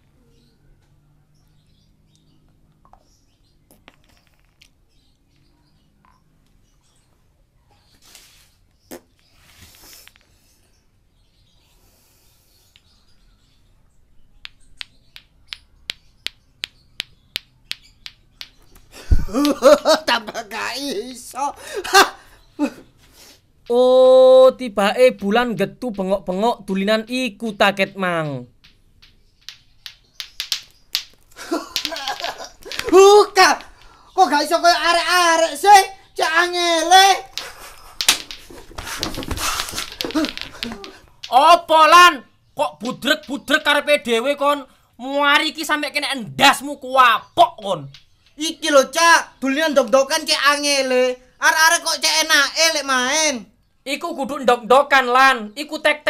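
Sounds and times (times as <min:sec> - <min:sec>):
plastic balls clacking together: 0:03.7 - 0:04.8, 0:14.4 - 0:20.6, 0:27.7 - 0:41.8, 0:42.8 - 0:43.8, 0:47.5 - 0:48.4
person wailing and sobbing: 0:31.4 - 0:33.6, 0:39.4 - 0:41.1.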